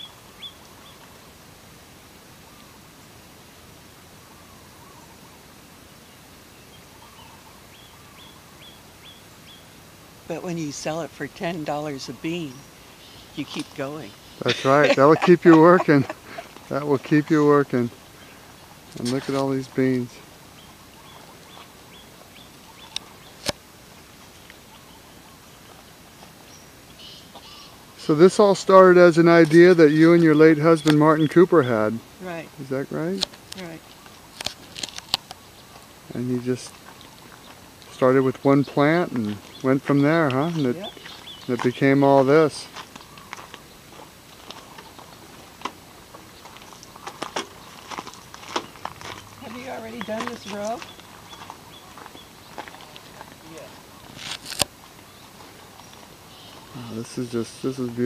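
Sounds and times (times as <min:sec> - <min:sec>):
small bird chirping: 0:00.0 - 0:01.3, 0:04.2 - 0:23.6, 0:24.2 - 0:28.2, 0:29.8 - 0:45.4, 0:46.1 - 0:57.8
low warbling bird calls: 0:00.0 - 0:58.0
outdoor background hiss: 0:00.0 - 0:58.0.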